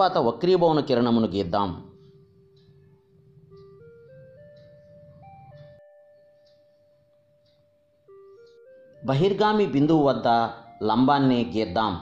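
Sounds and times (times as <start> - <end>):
simple rising melody: 1.0 - 12.0.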